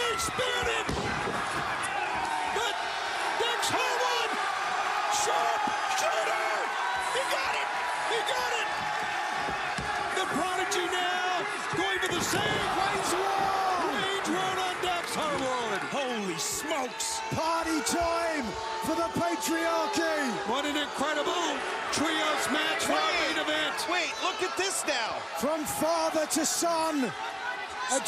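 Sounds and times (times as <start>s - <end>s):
wrestlers slamming the ring: 0.0s - 2.6s, 8.6s - 10.9s, 11.6s - 15.7s
crowd shouting and cheering: 0.0s - 28.0s.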